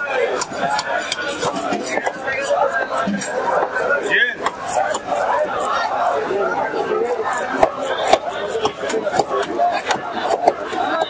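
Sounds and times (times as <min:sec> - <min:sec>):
voices talking: 0:00.0 - 0:11.0
blade clinking and scraping: 0:00.4 - 0:06.2.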